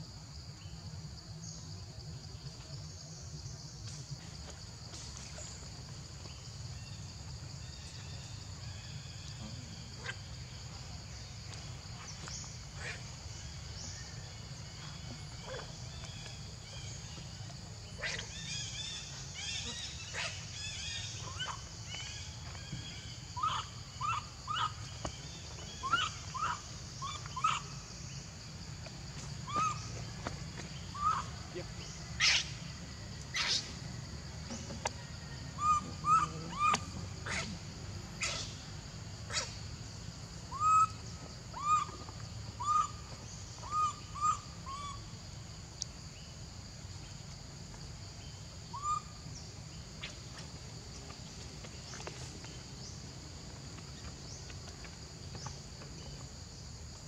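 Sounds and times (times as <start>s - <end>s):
animal chirping calls: 23.4s - 24.8s, 25.7s - 27.7s, 29.4s - 29.9s, 30.9s - 32.6s, 33.3s - 33.7s, 35.6s - 37.6s, 38.2s - 38.6s, 39.3s - 39.6s, 40.5s - 43.0s, 43.6s - 45.0s.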